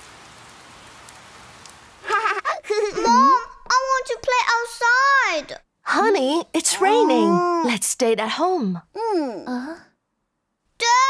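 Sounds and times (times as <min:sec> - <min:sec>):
steady rain falling: 0:00.0 - 0:07.4.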